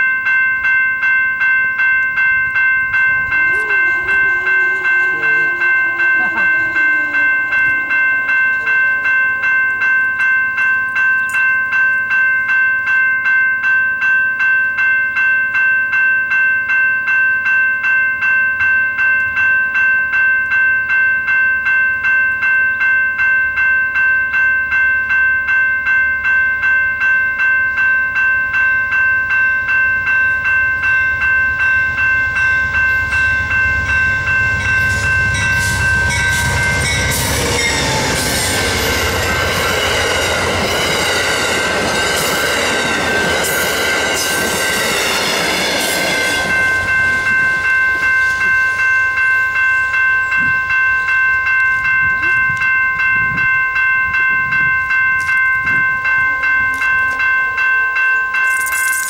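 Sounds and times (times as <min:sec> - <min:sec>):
railroad crossing bell ringing: 0:00.0 - 0:59.0
passenger train rumble: 0:01.6 - 0:12.2, 0:28.1 - 0:58.0.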